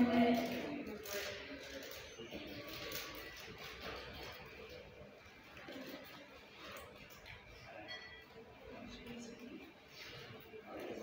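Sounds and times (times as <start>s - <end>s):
woman making announcement over loudspeakers: 0.0s - 0.9s.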